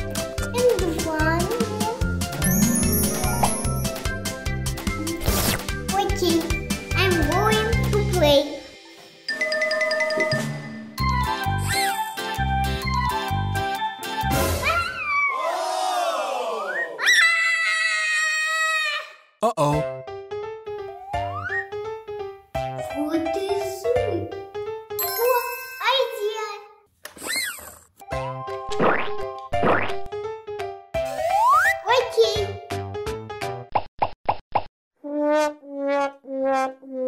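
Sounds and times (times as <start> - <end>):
music cue: 2.1 - 5.9
cartoon plop effects: 2.4 - 4.0, 28.7 - 30.1, 31.2 - 31.8
girl screaming: 14.6 - 16.0, 17.0 - 19.3.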